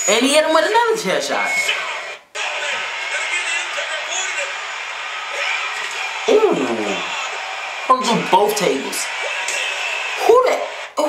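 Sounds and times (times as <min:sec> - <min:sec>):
indistinct voices: 0:00.0 - 0:11.0
large arena crowd noise: 0:01.4 - 0:11.0.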